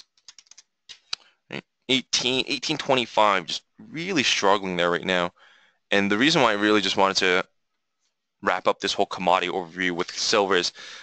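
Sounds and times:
typing on keyboard: 0.0s - 1.1s.

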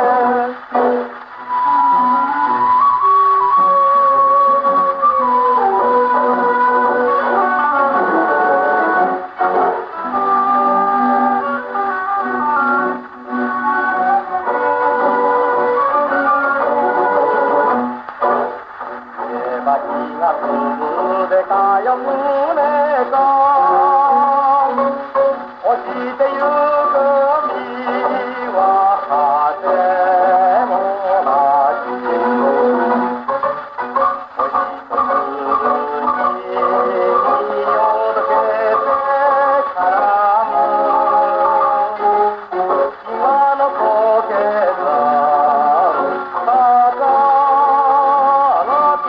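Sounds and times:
man singing: 0.0s - 17.8s, 19.1s - 33.5s, 34.4s - 49.0s
orchestral accompaniment: 0.0s - 49.0s.

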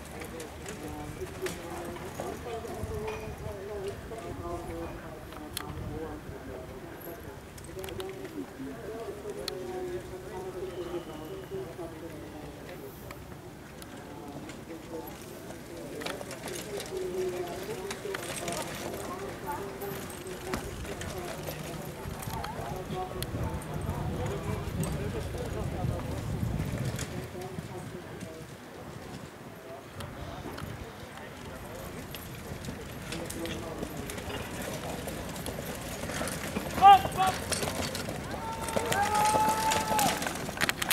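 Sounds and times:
background voices: 0.0s - 40.9s
horse hoofbeats: 31.5s - 40.9s
people calling out: 36.8s - 37.5s, 38.2s - 40.3s.

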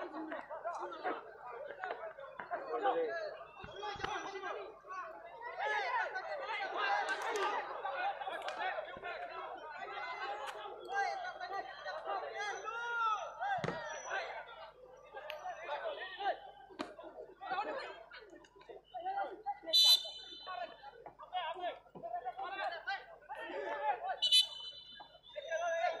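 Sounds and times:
people chattering: 0.0s - 26.0s.

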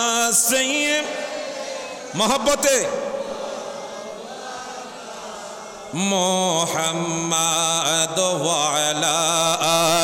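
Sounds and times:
man chanting over loudspeaker: 0.0s - 10.0s.

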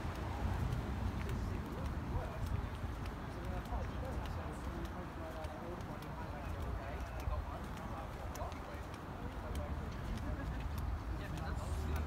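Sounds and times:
faint indistinct voices: 0.0s - 12.0s
footsteps on pavement: 0.0s - 12.0s.

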